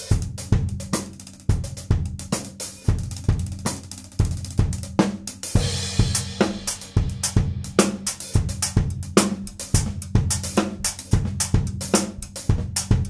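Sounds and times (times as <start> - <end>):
drum kit groove: 0.0 - 13.0.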